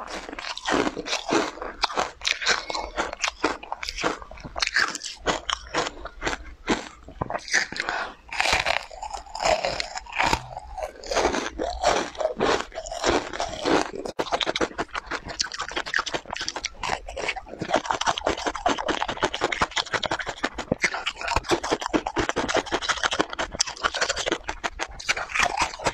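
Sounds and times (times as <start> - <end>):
wet crunchy chewing: 0.0 - 25.9.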